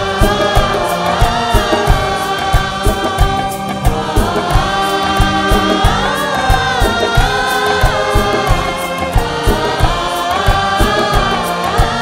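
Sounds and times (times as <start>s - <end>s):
chorus singing held notes: 0.0s - 12.0s
dholak and percussion beating: 0.0s - 12.0s
orchestra playing: 0.0s - 12.0s.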